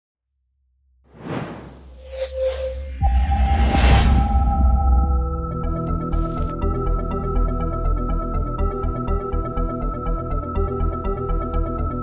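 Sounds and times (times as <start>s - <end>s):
whoosh: 1.1s - 4.9s.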